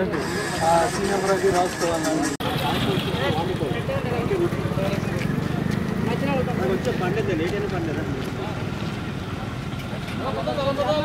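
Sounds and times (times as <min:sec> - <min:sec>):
people talking outdoors: 0:00.0 - 0:11.0
vehicle engine running: 0:00.3 - 0:10.1.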